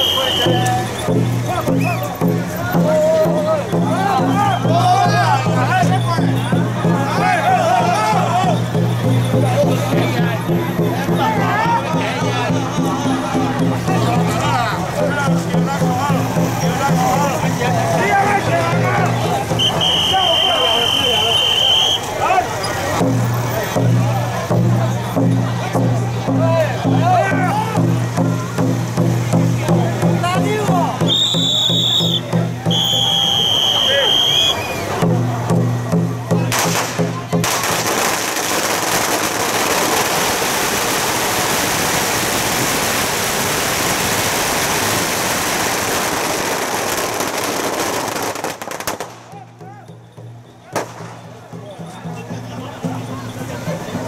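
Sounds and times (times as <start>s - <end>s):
crowd voices: 0.0s - 54.0s
firecrackers crackling: 0.0s - 54.0s.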